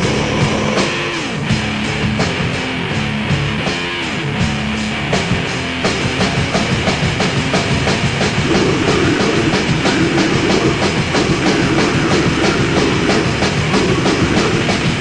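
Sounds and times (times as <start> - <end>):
fast drumming: 0.0 - 2.5, 6.0 - 15.0
distorted metal guitars: 0.0 - 15.0.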